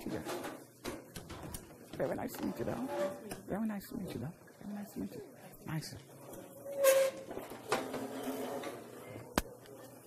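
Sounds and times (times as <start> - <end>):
chairs scraping on floor: 2.0 - 3.4, 6.6 - 9.1.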